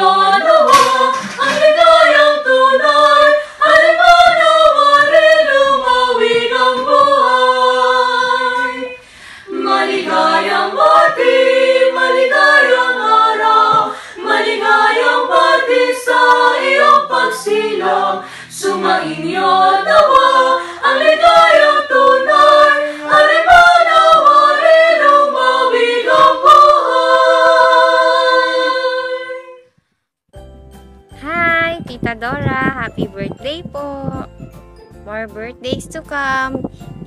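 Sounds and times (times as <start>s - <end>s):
group singing a cappella in harmony: 0.0s - 29.7s.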